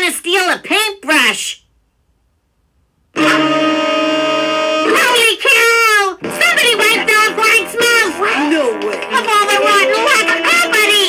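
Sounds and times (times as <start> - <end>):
cartoon music chord: 3.2 - 5.2.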